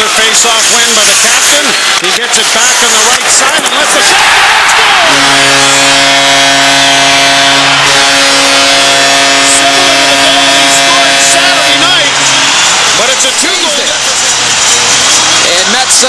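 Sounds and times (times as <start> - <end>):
crowd cheering and shouting: 0.0 - 16.0
goal horn held chord: 5.0 - 13.1.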